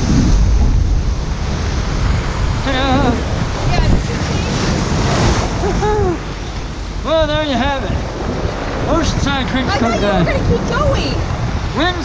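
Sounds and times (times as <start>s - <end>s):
ocean surf crashing over rocks: 0.0s - 12.0s
wind rumbling on microphone: 0.0s - 12.0s.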